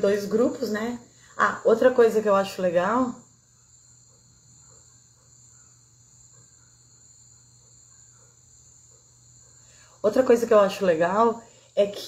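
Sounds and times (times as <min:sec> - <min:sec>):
faint low hum: 0:00.0 - 0:12.0
high-pitched insect chirring: 0:00.0 - 0:12.0.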